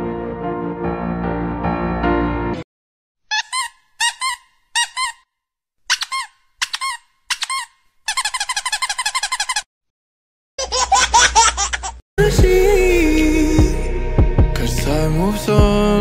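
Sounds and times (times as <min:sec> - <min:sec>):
dog squeaking: 0:03.3 - 0:05.2, 0:05.9 - 0:09.6.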